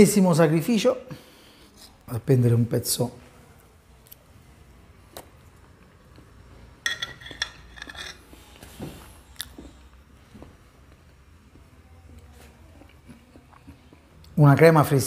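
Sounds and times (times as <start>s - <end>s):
fork clinking on a plate: 6.8s - 8.3s.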